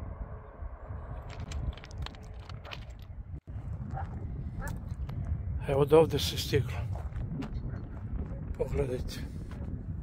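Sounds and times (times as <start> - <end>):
wind rumbling on microphone: 0.0 - 10.0
footsteps crunching on gravel: 6.7 - 8.4.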